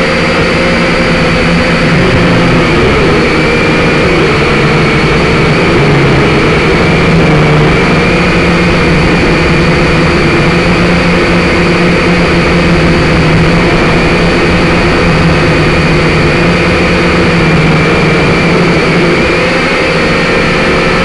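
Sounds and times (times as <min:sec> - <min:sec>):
drone propellers whining: 0:00.0 - 0:21.0.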